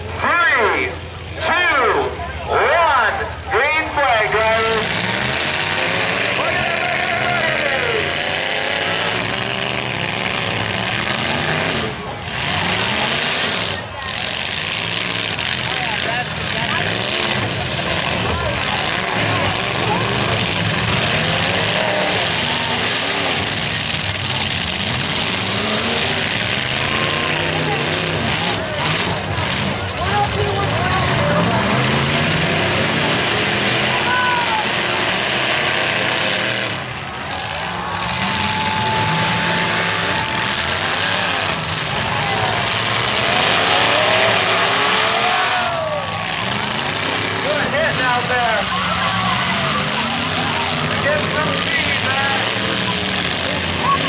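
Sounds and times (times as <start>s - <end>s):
crowd noise: 0.0s - 54.0s
truck engines revving: 0.0s - 54.0s.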